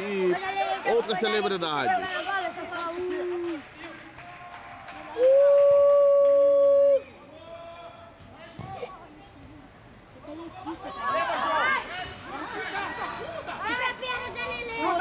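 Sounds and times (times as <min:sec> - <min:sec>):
children shouting and calling: 0:10.8 - 0:15.0.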